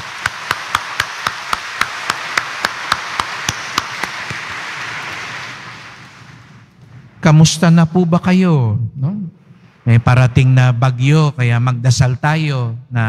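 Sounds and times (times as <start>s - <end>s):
hands clapping sharply nearby: 0.0s - 6.5s
congregation applauding: 0.0s - 6.8s.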